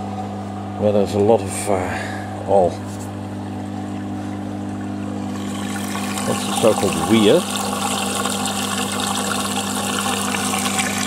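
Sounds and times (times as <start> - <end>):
running water: 2.5 - 11.0.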